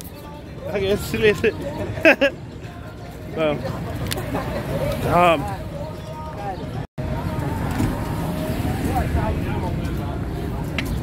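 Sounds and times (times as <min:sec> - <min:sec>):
car traffic rumble: 0:00.0 - 0:11.0.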